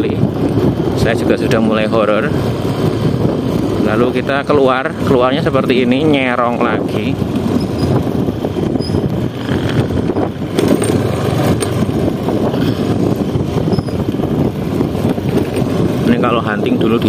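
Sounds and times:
road noise: 0.0s - 17.0s
vehicle engine running: 0.0s - 17.0s
wind buffeting microphone: 0.0s - 17.0s.

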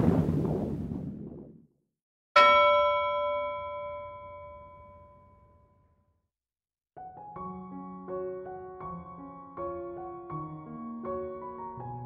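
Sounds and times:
bell-like ding: 2.4s - 6.0s.

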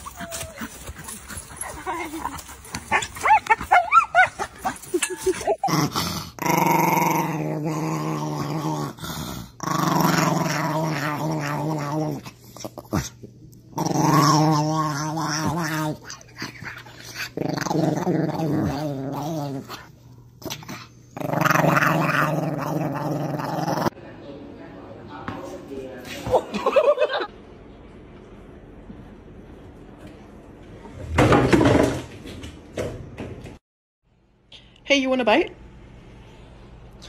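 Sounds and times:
small dog growling playfully: 5.2s - 24.0s.

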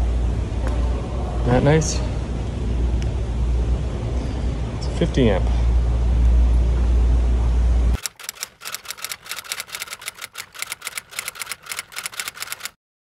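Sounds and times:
typewriter key clacking: 8.0s - 12.8s.

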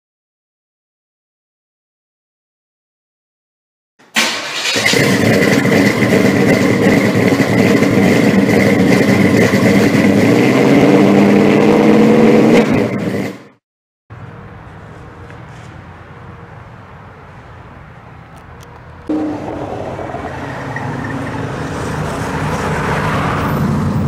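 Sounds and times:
outdoor background: 4.0s - 24.0s
car engine starting and revving: 4.2s - 13.6s, 19.0s - 24.0s.

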